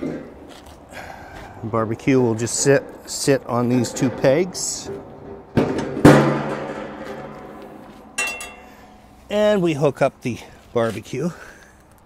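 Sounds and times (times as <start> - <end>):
loud metallic clank ringing: 5.8 - 9.2
light metal clink: 8.2 - 8.9.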